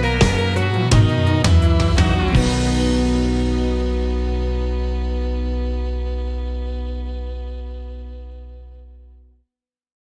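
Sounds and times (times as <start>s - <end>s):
held guitar chord: 0.0s - 9.0s
country music: 0.0s - 9.2s.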